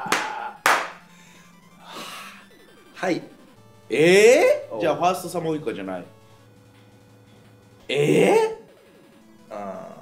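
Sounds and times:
man laughing: 0.0s - 0.7s, 7.9s - 8.6s
hand claps: 0.0s - 1.0s
faint background music: 0.0s - 10.0s.

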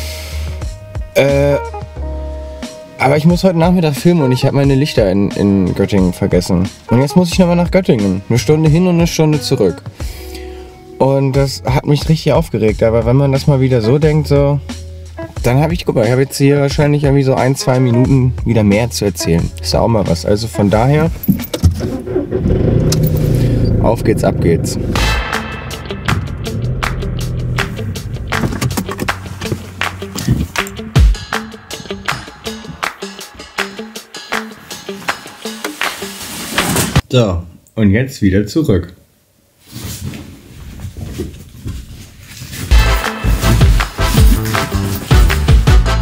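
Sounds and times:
car engine humming: 20.7s - 33.6s
rattle inside car: 21.2s - 24.5s, 27.4s - 30.6s
music with heavy bass beat: 24.8s - 36.1s, 42.7s - 46.0s
fabric bags rustling: 39.6s - 45.1s.

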